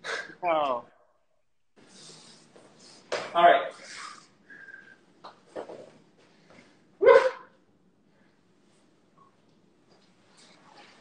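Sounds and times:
dog barking: 7.0s - 7.6s.

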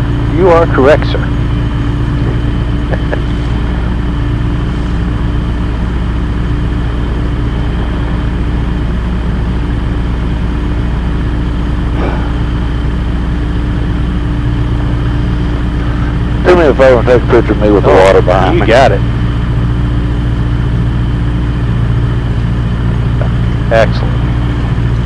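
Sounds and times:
aircraft engine at low power: 0.0s - 25.0s.

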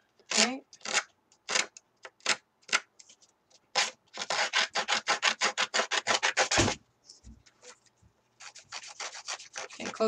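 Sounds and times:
tool rasping paper edge: 3.7s - 6.8s, 8.4s - 10.0s.

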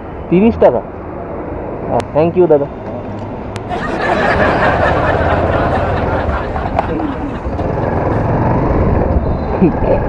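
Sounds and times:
motorcycle engine accelerating: 5.1s - 10.0s.

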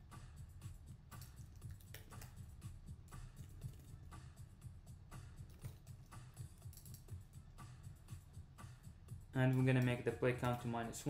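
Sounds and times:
faint background music: 0.0s - 11.0s
keyboard and mouse clicks: 1.1s - 2.4s, 3.1s - 3.9s, 5.5s - 7.2s, 9.5s - 10.7s.

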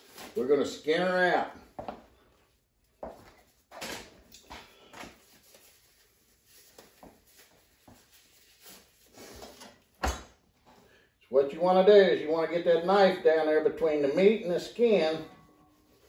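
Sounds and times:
disposable gloves rustling: 0.0s - 0.8s, 1.6s - 10.9s.

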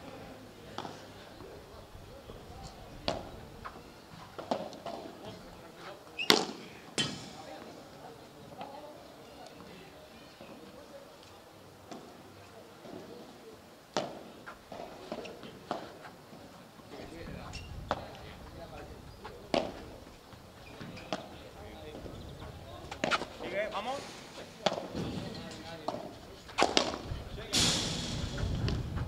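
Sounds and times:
ball struck with rackets: 6.2s - 7.5s, 25.9s - 28.8s
ball bouncing off court: 22.9s - 23.4s, 25.9s - 27.1s
rush of noise: 27.6s - 29.0s.

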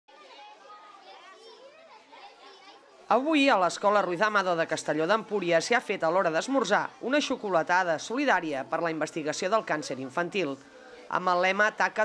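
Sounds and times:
children chattering: 0.1s - 12.0s.

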